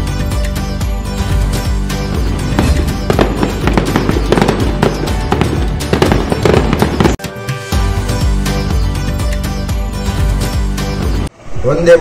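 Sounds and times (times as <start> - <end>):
festive music: 0.0 - 11.3
firecracker pops and crackles: 2.6 - 7.2.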